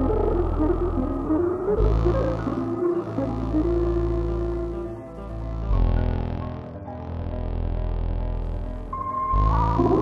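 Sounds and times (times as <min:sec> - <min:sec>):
deep electronic drone: 0:00.0 - 0:10.0
held electronic tone: 0:09.0 - 0:10.0.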